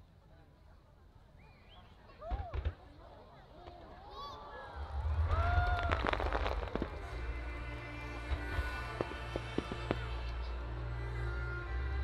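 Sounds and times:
firework bursts: 4.8 - 11.2.

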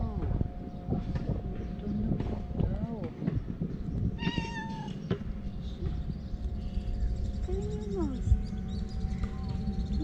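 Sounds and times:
cat meowing: 4.2 - 5.0.

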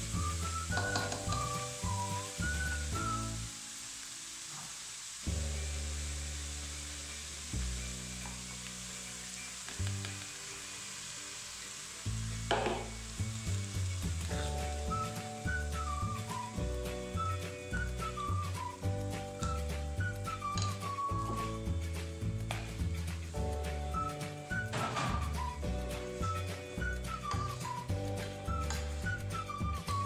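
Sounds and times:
vegetables sizzling in a frying pan: 0.0 - 30.0
liquid splashing into a pan: 0.4 - 3.2, 9.6 - 16.5, 24.6 - 25.6.

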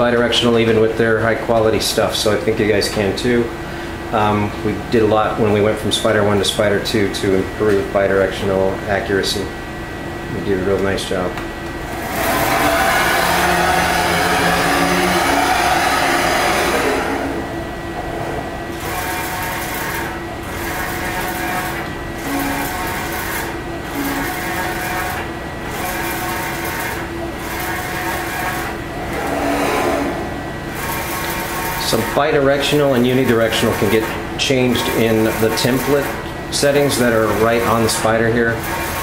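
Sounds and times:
printer motor driving screen: 11.7 - 39.0.

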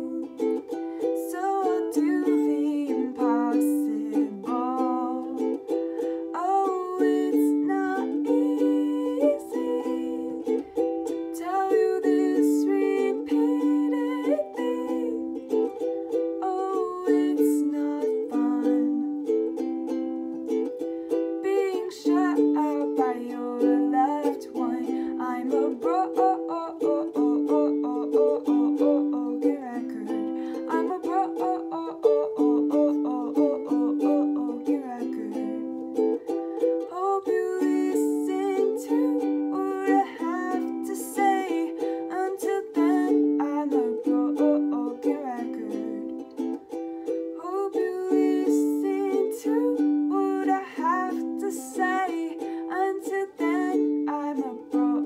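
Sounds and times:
ukulele strumming: 0.0 - 55.0
woman singing: 0.0 - 55.0.

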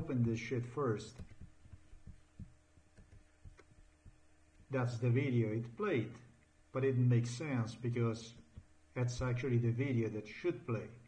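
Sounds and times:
faint low thumps: 0.0 - 4.9
faint steady hum: 0.0 - 11.0.

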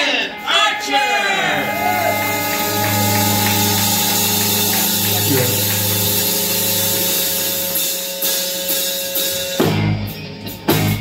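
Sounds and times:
drums: 0.0 - 11.0
electric guitars ringing: 0.0 - 11.0.

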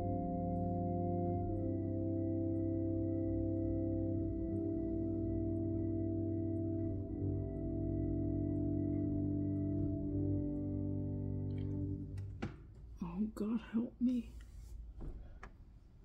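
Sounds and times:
organ holding chords: 0.0 - 12.8
light knocks: 12.2 - 12.9, 15.0 - 15.6.

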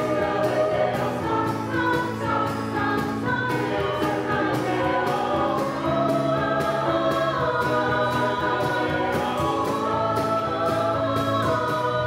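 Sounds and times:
mixed choir singing: 0.0 - 12.0
piano and percussion accompaniment: 0.0 - 12.0.

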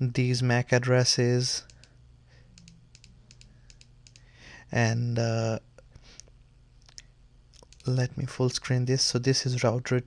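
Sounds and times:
low steady hum: 0.0 - 10.0
computer keys clicking: 2.6 - 4.3, 7.6 - 8.0.

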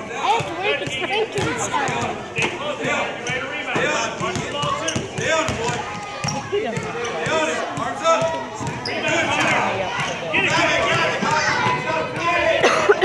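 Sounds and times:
voices talking and calling out: 0.0 - 13.0
basketballs bouncing on hardwood: 0.3 - 2.2, 2.8 - 12.3.

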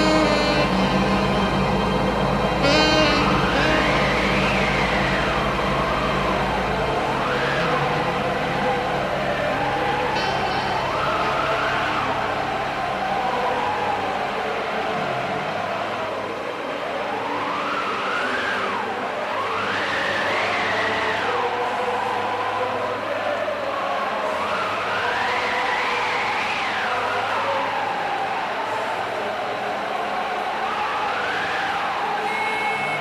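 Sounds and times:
droning chord: 0.0 - 23.2
siren-like wail: 0.0 - 33.0.

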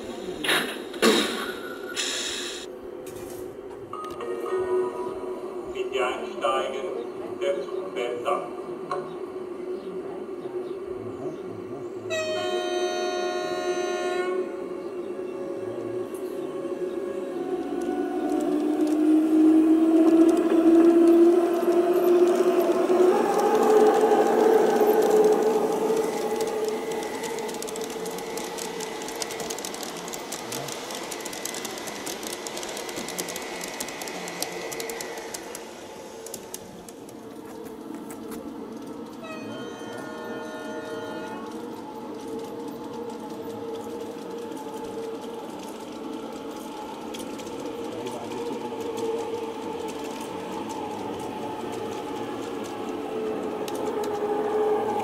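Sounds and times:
model train horn blast: 12.1 - 14.5, 39.3 - 41.5
model train motor whine: 19.8 - 37.5.

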